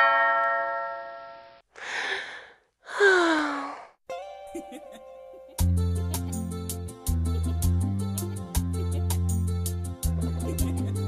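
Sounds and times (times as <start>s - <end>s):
breathy gasp: 1.8s - 4.0s
person sighing ah: 1.8s - 4.0s.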